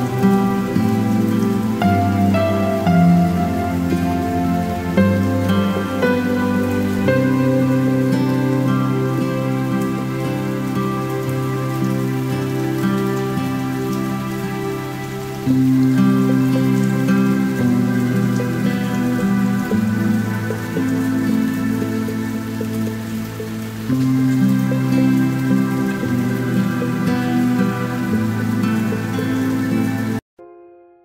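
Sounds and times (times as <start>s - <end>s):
instrumental acoustic music: 0.0s - 31.0s.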